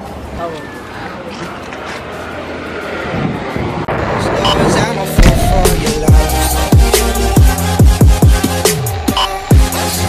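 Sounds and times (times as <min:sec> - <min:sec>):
background voices: 0:04.3 - 0:07.4.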